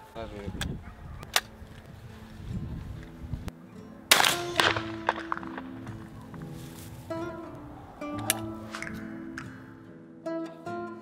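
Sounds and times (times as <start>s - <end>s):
acoustic guitar music: 1.5s - 11.0s.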